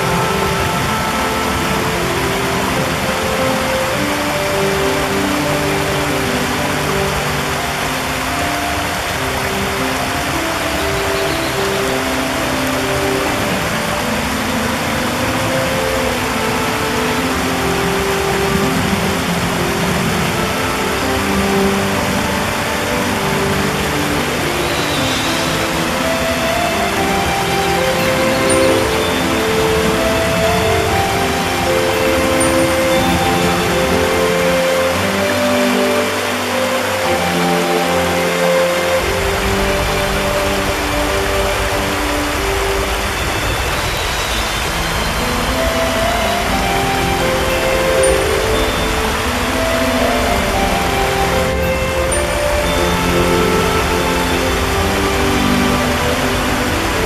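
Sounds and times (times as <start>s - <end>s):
slow soft music: 0.0s - 57.0s
stream rushing over rocks: 0.0s - 57.0s.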